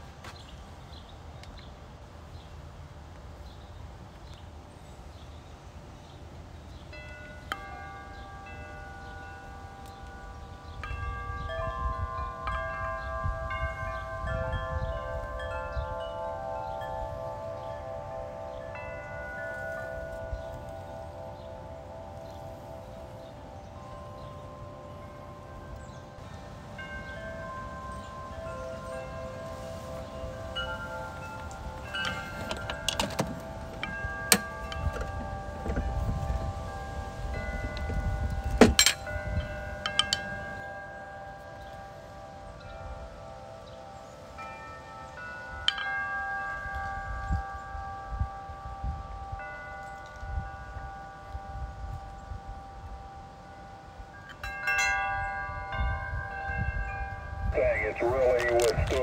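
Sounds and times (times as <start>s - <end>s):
wind chimes ringing: 6.0s - 59.0s
wind rumbling on microphone: 8.9s - 41.0s, 46.4s - 59.0s.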